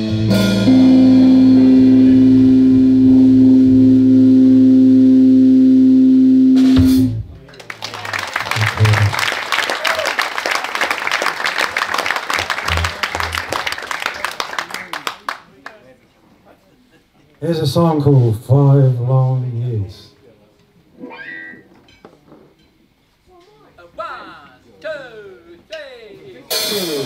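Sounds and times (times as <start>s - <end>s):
blues band chord: 0.0s - 7.3s, 12.3s - 13.8s
audience applause: 7.3s - 15.8s.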